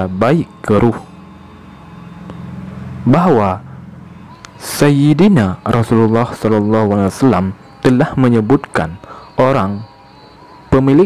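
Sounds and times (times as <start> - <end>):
steady low hum: 0.0 - 11.0
sustained low tones: 0.0 - 11.0.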